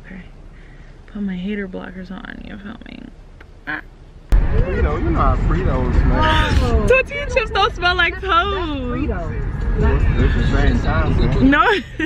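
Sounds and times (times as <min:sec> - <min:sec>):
car road rumble: 0:00.0 - 0:12.0
lively voices: 0:04.4 - 0:12.0.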